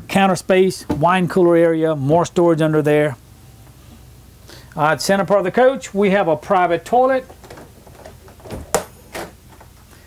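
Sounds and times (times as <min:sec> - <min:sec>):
wooden door opening: 0:07.3 - 0:09.7.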